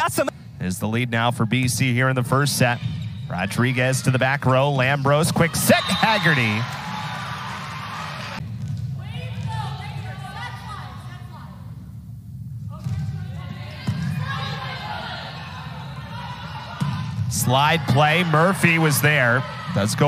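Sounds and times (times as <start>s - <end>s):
crowd and players' voices: 0.0s - 20.0s.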